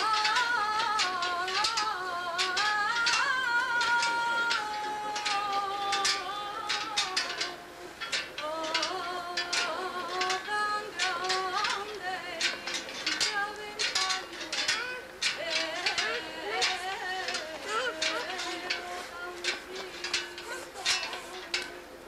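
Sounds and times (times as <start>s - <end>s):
woman singing unaccompanied: 0.0s - 22.0s.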